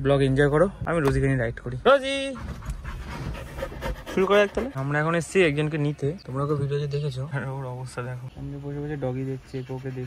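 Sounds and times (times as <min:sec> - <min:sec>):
dog panting: 0:02.3 - 0:04.9.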